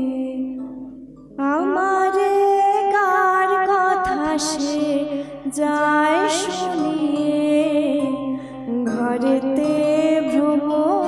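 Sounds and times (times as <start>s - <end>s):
woman singing into microphone: 0.0s - 11.0s.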